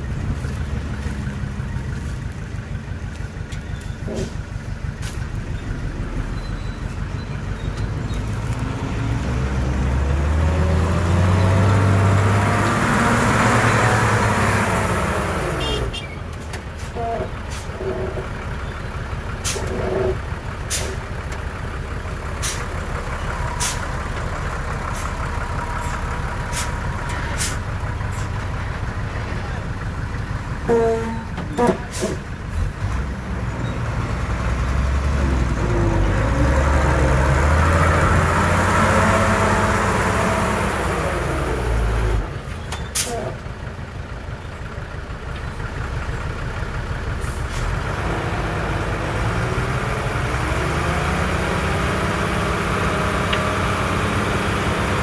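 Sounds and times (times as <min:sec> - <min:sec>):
diesel truck engine running: 0:00.0 - 0:55.0.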